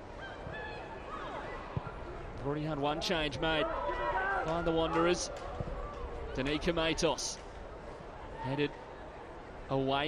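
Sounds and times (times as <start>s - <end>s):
stadium crowd murmur: 0.0s - 10.0s.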